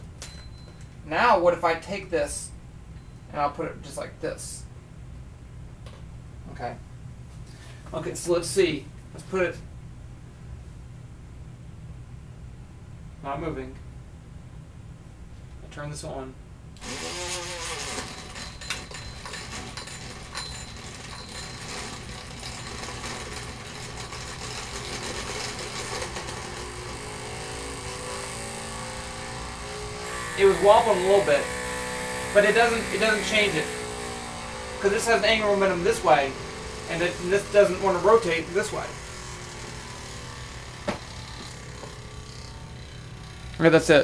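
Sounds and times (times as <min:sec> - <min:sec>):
small electric motor whirring: 0:16.8 - 0:43.6.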